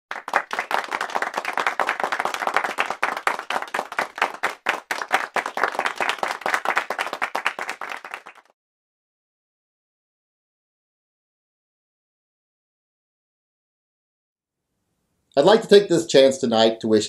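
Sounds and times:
rapid hand clapping: 0.1s - 8.5s.

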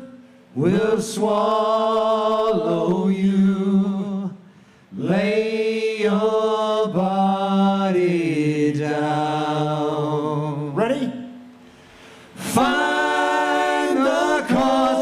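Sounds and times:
male vocal group singing harmony: 0.0s - 11.2s, 12.3s - 15.0s.

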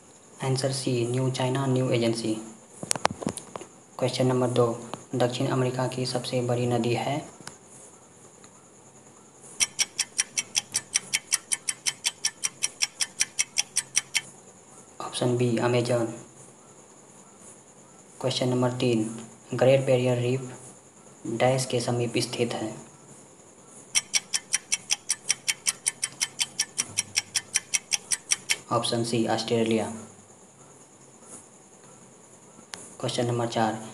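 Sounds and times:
fast clock ticks: 9.6s - 14.3s, 24.0s - 28.7s.

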